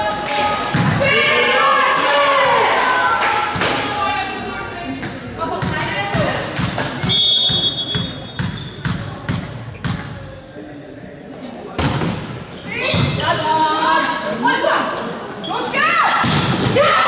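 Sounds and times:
players' voices: 0.0 - 17.0
referee's whistle: 7.0 - 8.8.

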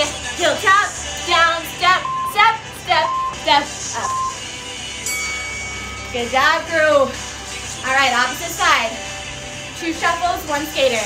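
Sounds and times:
long high timer beep: 2.0 - 2.4, 3.0 - 3.4, 4.0 - 4.4
short countdown beep: 2.0 - 4.4.

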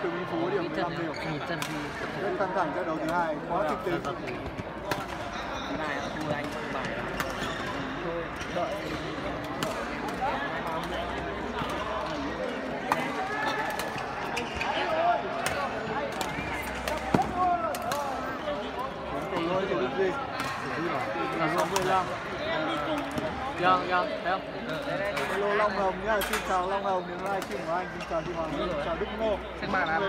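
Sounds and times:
echoing murmur of voices: 0.0 - 30.0.

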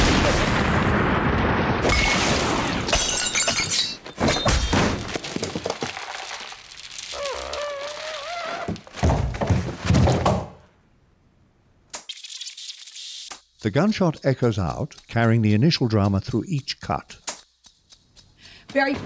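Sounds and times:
loud burst: 0.0 - 2.9
sharp thunks and breaking hits: 0.0 - 6.6, 8.8 - 10.6.

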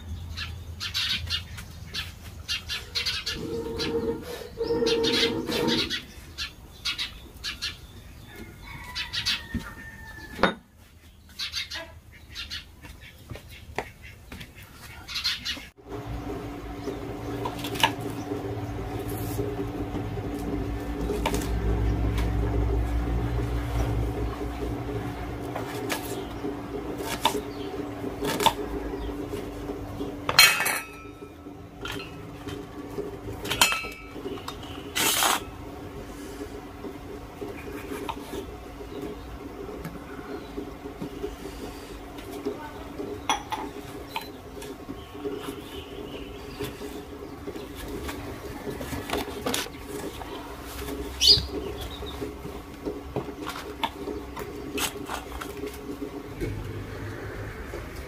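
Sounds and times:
steady low hum: 2.9 - 6.6, 15.8 - 58.0.

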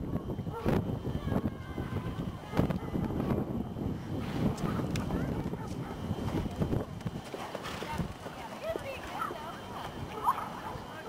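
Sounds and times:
horse hoofbeats on soft dirt: 4.2 - 10.4.

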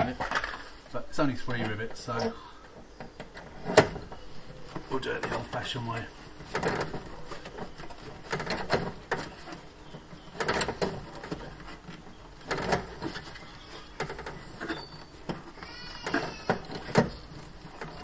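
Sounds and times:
short squeak: 12.9 - 17.3.

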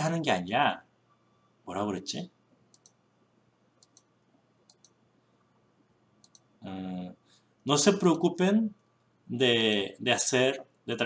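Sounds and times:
computer mouse clicks: 2.7 - 3.0, 3.8 - 5.0, 6.2 - 6.5.

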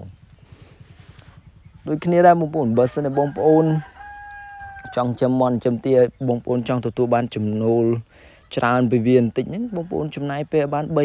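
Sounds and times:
rooster crowing faintly: 2.4 - 5.4
man's voice: 5.0 - 11.0.

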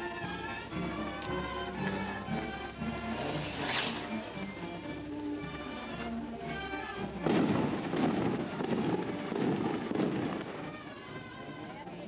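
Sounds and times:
firecrackers crackling: 7.1 - 11.2.

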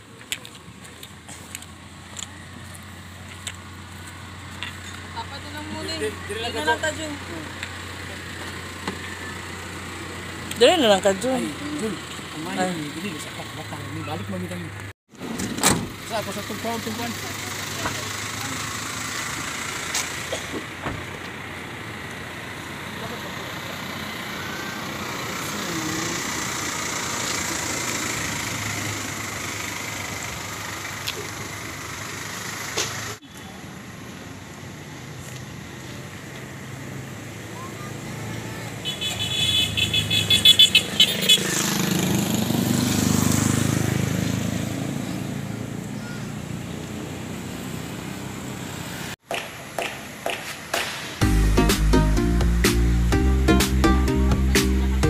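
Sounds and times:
street traffic: 0.0 - 55.0
voices: 4.8 - 14.9, 21.8 - 29.3, 35.8 - 41.6, 45.0 - 47.0
motor vehicle passing: 34.5 - 51.2
vehicle horn short beeps: 38.8 - 41.4.

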